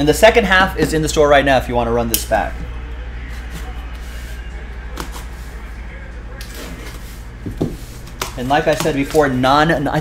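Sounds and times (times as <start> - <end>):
cardboard knocks and scrapes: 7.4 - 9.0.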